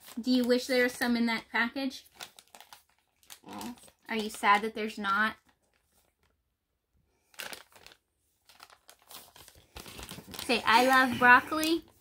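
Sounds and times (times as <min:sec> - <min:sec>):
plastic snack bag crinkling: 0:00.0 - 0:06.4, 0:07.2 - 0:12.0.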